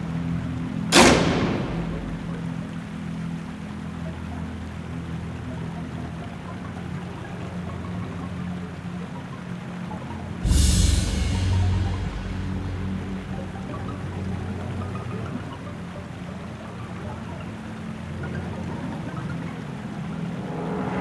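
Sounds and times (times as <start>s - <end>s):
low musical drone: 0.0s - 21.0s
loud ringing music hit: 0.9s - 2.4s, 10.4s - 14.9s, 20.3s - 21.0s.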